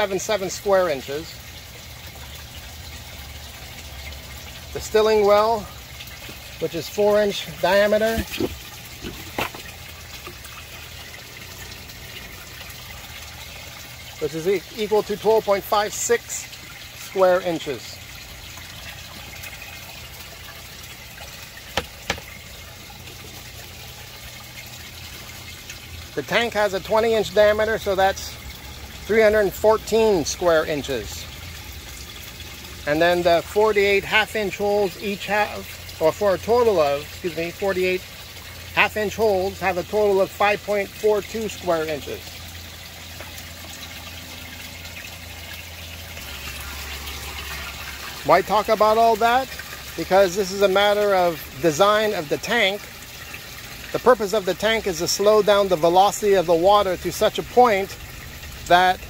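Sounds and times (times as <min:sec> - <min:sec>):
water running and trickling: 0:00.0 - 0:59.0.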